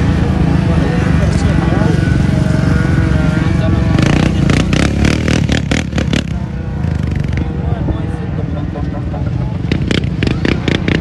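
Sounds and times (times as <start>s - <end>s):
heavy engine rumble: 0.0s - 11.0s
people's voices: 0.0s - 11.0s.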